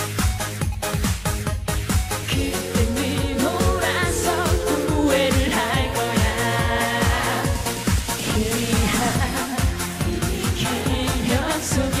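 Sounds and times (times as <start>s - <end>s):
woman singing: 2.3s - 12.0s.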